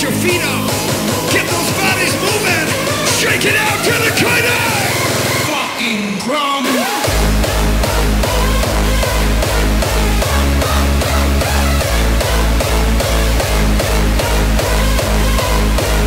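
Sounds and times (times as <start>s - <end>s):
heavy distorted kick drum: 0.0s - 5.5s, 7.1s - 16.0s
crowd yelling: 0.0s - 16.0s
loud hardstyle music: 0.0s - 16.0s.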